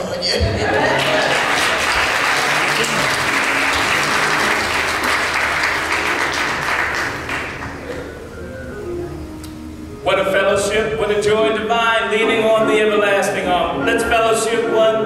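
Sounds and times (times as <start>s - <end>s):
congregation applauding: 0.6s - 8.8s
soft music: 0.7s - 15.0s.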